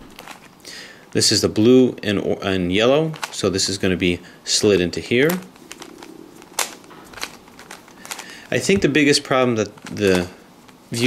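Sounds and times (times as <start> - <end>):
plastic puzzle clicking: 5.2 - 8.7.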